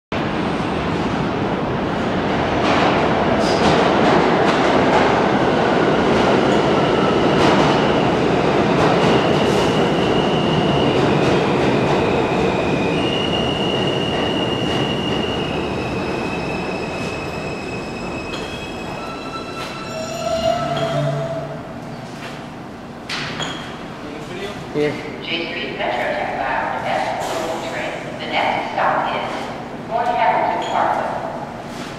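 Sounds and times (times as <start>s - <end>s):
subway train rumbling on rails: 0.1s - 31.9s
high wheel squeals: 16.1s - 21.6s.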